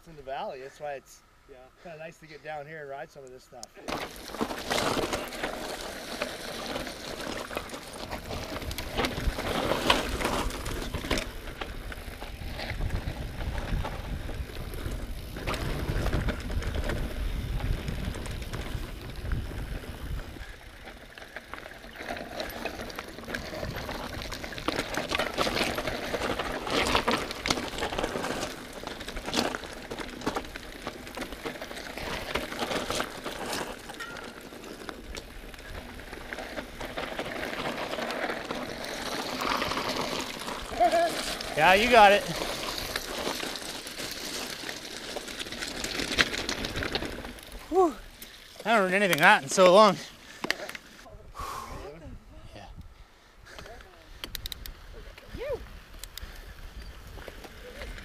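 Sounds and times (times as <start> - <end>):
tyres crunching over dirt: 3.8 - 51.0
bike rattling and knocking: 3.9 - 47.7
wind rumble on microphone: 8.2 - 20.6.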